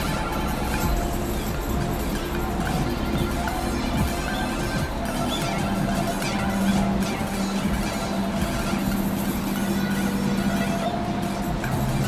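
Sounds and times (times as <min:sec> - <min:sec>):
harsh distorted noise music: 0:00.0 - 0:12.0
steady low drone: 0:00.0 - 0:12.0.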